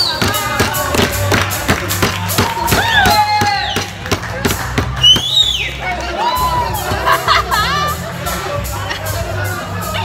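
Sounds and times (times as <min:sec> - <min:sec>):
group clapping in time: 0:00.2 - 0:06.2.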